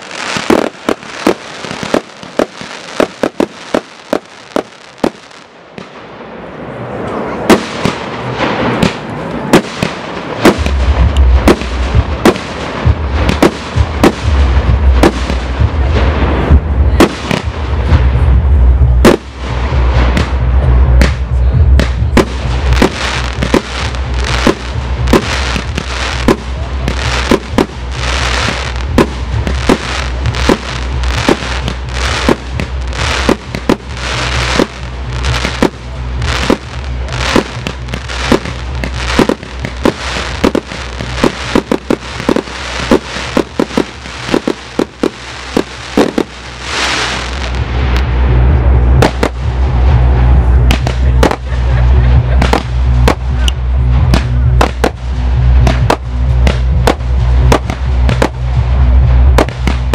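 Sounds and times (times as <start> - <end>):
fireworks shells bursting: 0.0 - 5.2, 22.7 - 48.0
fireworks crackle: 0.0 - 59.9.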